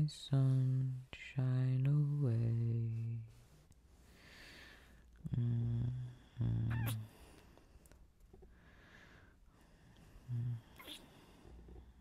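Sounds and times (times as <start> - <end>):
man humming: 5.2 - 7.1, 10.2 - 11.0.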